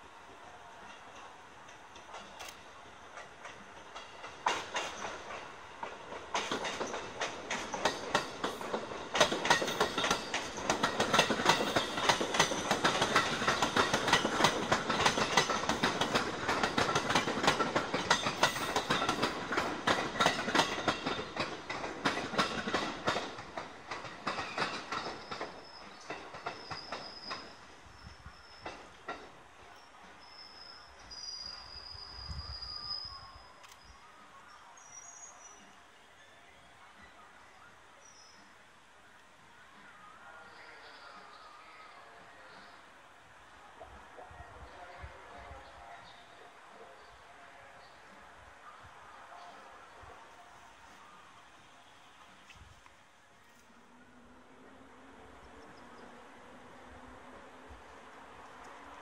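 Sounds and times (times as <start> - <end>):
train wheels clacking over rail joints: 0.8 - 27.8, 28.4 - 29.6.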